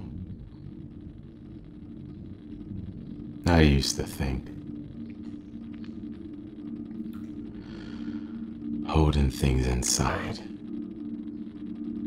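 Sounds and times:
dark rumble: 0:00.0 - 0:12.0
low held tones: 0:00.0 - 0:12.0
faint ticks: 0:05.0 - 0:08.3.

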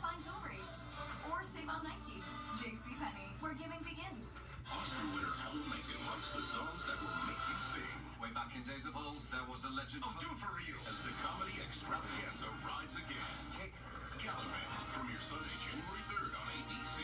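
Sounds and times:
television music: 0:00.0 - 0:17.0
television speech: 0:00.0 - 0:17.0.

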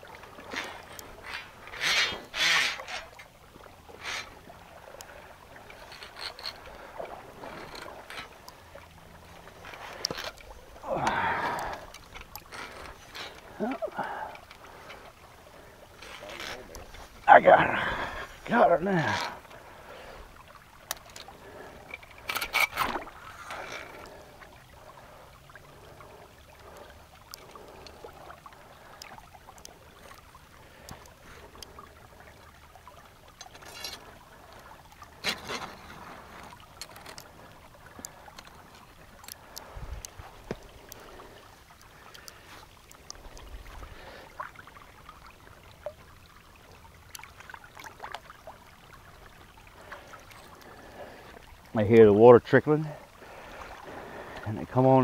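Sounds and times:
faint water trickle: 0:00.0 - 0:55.0.

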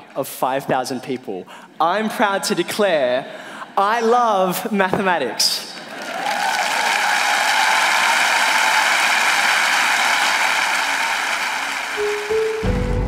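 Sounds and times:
audience applauding: 0:05.8 - 0:13.0.

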